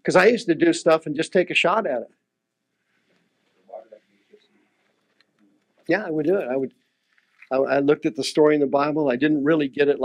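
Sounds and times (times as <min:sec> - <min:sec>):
man's voice: 0:05.9 - 0:06.7, 0:07.5 - 0:10.0.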